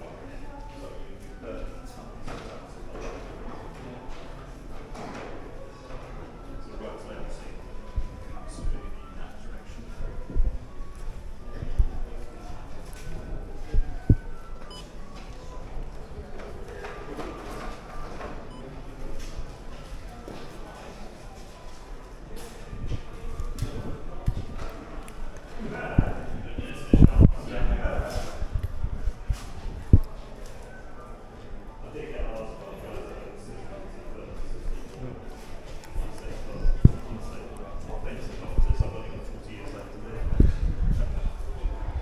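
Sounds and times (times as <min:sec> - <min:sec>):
people chattering in echoing room: 0:00.0 - 0:42.0.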